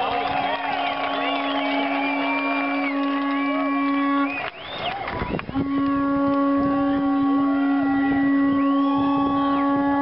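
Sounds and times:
crowd whooping: 0.0s - 10.0s
horn long low note: 0.4s - 4.5s, 5.4s - 10.0s.

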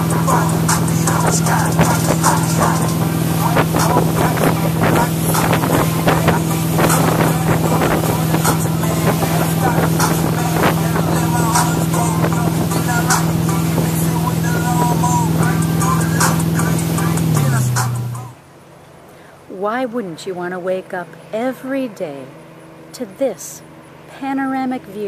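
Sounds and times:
wind buffeting microphone: 0.0s - 17.2s
motorboat engine droning: 0.0s - 25.0s
water rushing: 0.0s - 25.0s.

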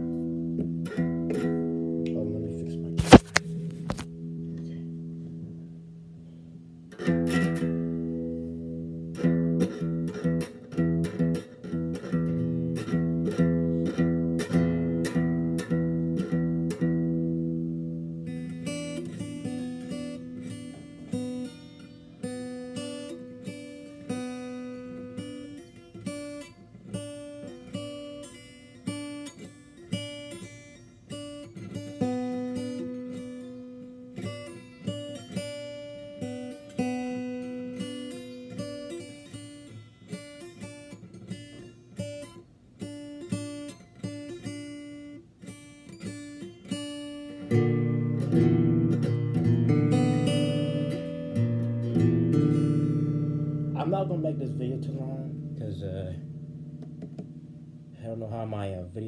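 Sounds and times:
guitar strumming and picking: 0.0s - 59.0s.

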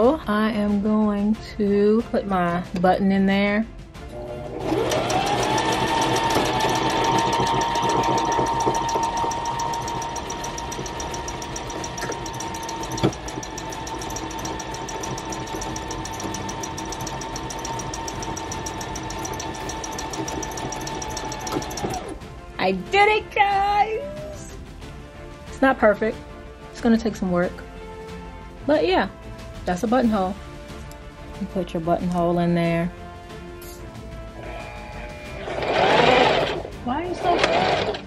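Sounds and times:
sewing machine stitching: 4.5s - 22.2s, 35.3s - 38.0s.

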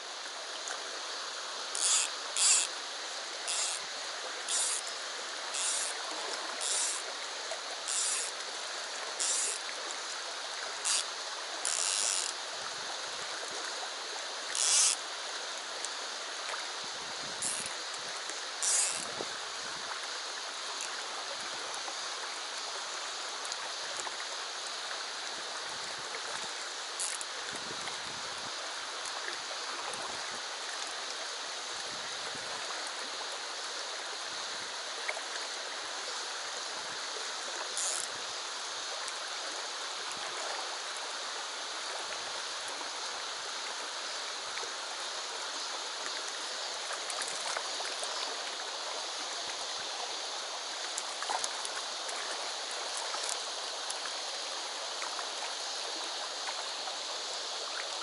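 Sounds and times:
shallow river running over stones: 0.0s - 58.0s.

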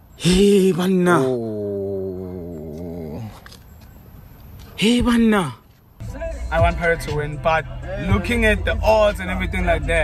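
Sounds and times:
man's drawn-out wavering vocal: 0.2s - 3.4s.

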